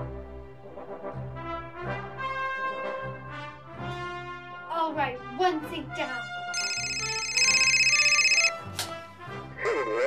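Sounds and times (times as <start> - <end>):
background music: 0.0 - 10.0
telephone ringing electronic trill: 6.6 - 8.5.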